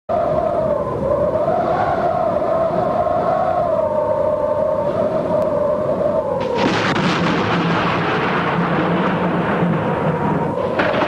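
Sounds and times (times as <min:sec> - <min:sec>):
low rumble: 0:04.7 - 0:11.0.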